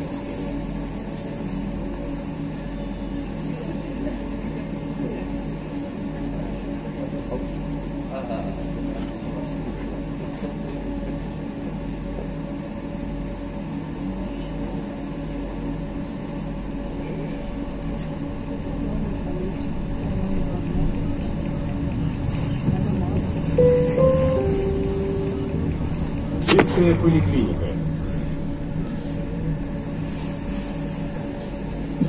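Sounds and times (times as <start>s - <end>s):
tram running: 8.6s - 32.0s
short steady tones: 23.6s - 26.1s
low electric hum: 23.6s - 28.8s.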